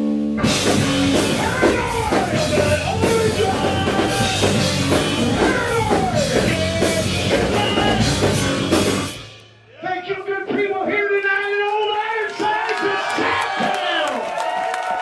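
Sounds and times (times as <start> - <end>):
rock trio with organ: 0.0 - 9.4
audience clapping: 11.2 - 15.0
audience cheering and whooping: 12.0 - 15.0.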